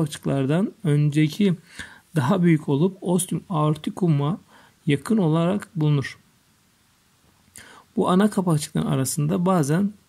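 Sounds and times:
person narrating: 0:00.0 - 0:06.3, 0:07.6 - 0:10.0
faint in-breath: 0:01.6 - 0:02.1, 0:04.5 - 0:04.8, 0:07.5 - 0:07.9.

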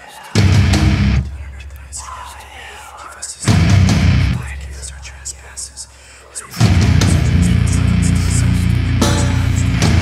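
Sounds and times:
faint whispered voice: 0:00.0 - 0:00.6, 0:01.2 - 0:03.6, 0:04.2 - 0:09.8
sparse electric guitar: 0:00.4 - 0:01.2, 0:03.5 - 0:04.4, 0:06.6 - 0:10.0
heavy low guitar chord: 0:00.6 - 0:01.2, 0:06.8 - 0:10.0.

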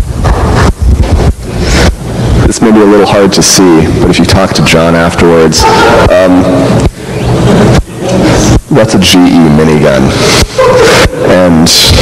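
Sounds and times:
rumbling blowing on microphone: 0:00.0 - 0:12.0.

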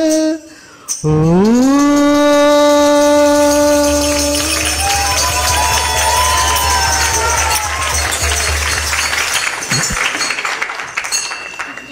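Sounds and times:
crowd cheering: 0:03.3 - 0:11.9.

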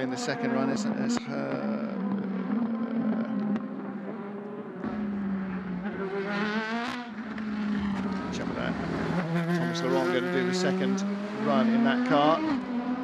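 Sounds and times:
race car engines revving: 0:00.0 - 0:13.0.

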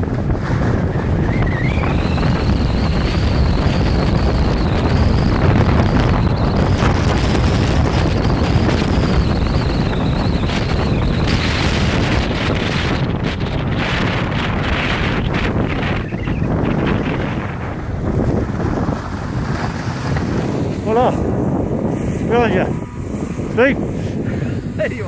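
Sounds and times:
wind rushing over microphone: 0:00.0 - 0:25.0.

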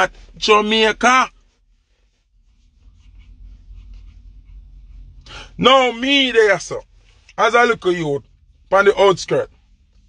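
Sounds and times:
faint rustling: 0:00.0 - 0:05.4
faint low rumble in car: 0:00.0 - 0:10.0.

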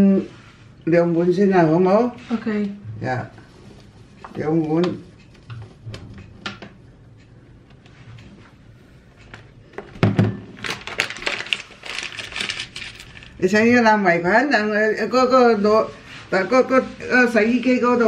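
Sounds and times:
paper bag crackling: 0:10.6 - 0:13.6.

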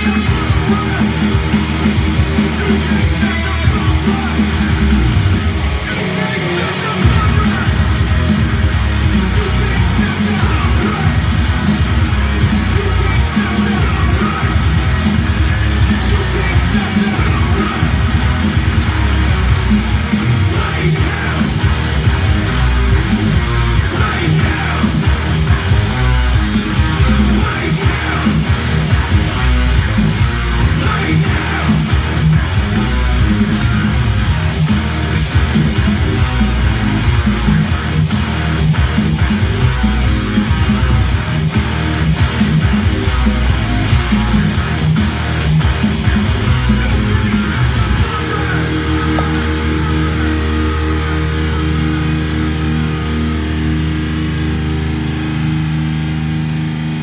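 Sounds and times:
band with bass and drums: 0:00.0 - 0:57.0
electric guitar metal riffs: 0:00.0 - 0:57.0.

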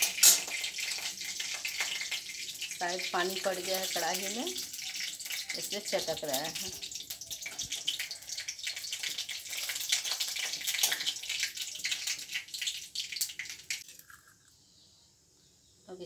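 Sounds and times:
seeds crackling in hot oil: 0:00.0 - 0:14.6.

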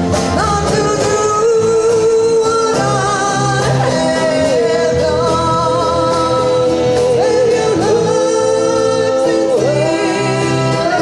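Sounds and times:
acoustic and electric guitars: 0:00.0 - 0:11.0
woman singing into microphone: 0:00.1 - 0:11.0.

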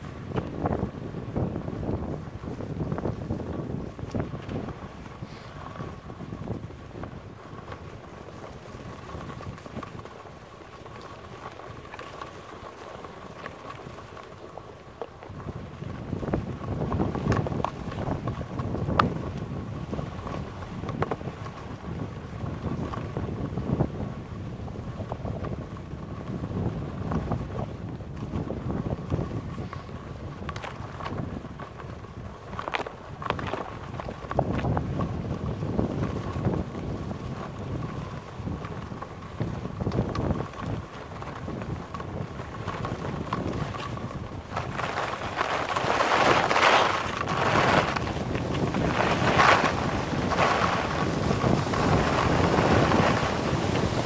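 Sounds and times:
wind rushing over microphone: 0:00.0 - 0:12.3, 0:15.2 - 0:54.0
skis scraping on snow: 0:00.0 - 0:54.0
ski edges scraping: 0:05.2 - 0:05.8, 0:44.6 - 0:54.0.

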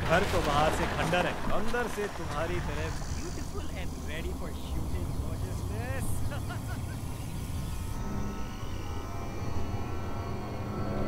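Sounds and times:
low rumbling drone: 0:00.0 - 0:11.0
eerie sustained tones: 0:00.2 - 0:11.0.

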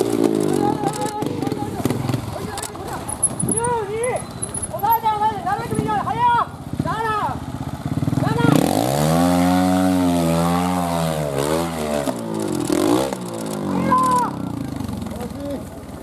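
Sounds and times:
motorcycle engine revving: 0:00.0 - 0:04.8, 0:05.6 - 0:16.0.

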